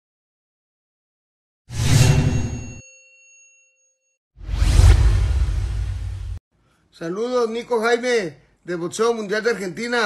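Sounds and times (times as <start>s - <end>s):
whoosh: 4.4s - 6.4s
deep rumble: 4.5s - 6.4s.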